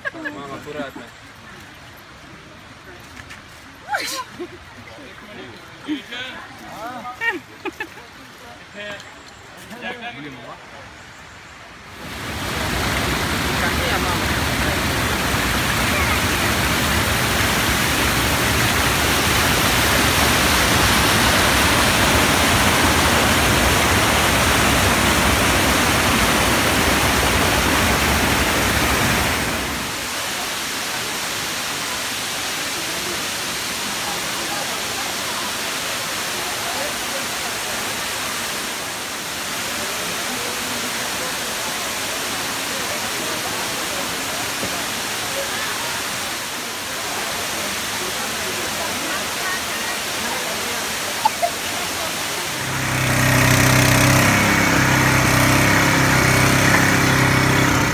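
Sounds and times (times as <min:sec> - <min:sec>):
waterfall rushing: 0:11.8 - 0:57.9
faint human voices: 0:29.8 - 0:53.0.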